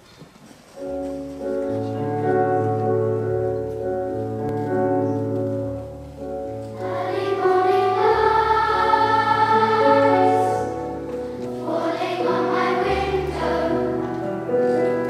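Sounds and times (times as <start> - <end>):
keyboard accompaniment: 0.4 - 15.0
children's choir singing: 6.7 - 15.0.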